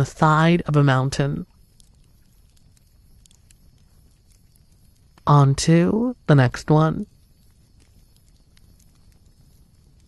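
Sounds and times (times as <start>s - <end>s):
low rumble and hiss: 0.0s - 10.0s
soft ticks: 0.6s - 5.3s, 7.0s - 10.0s.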